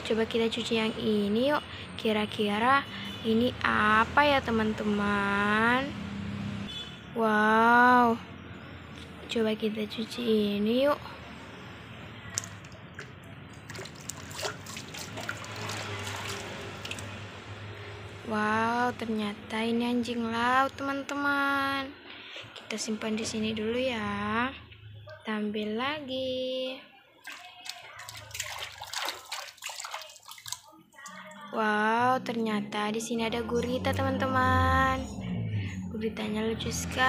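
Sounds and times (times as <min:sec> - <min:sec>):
water sloshing and trickling: 0:12.1 - 0:18.0, 0:27.0 - 0:31.7
small splashes: 0:12.2 - 0:17.4, 0:27.1 - 0:31.5
hand rubbing toy in water: 0:12.3 - 0:17.2, 0:27.2 - 0:31.1.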